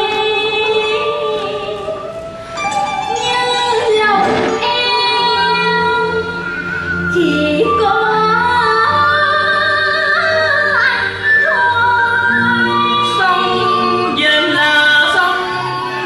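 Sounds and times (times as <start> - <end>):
instrumental accompaniment: 0.7 - 16.0
person singing opera: 3.1 - 16.0.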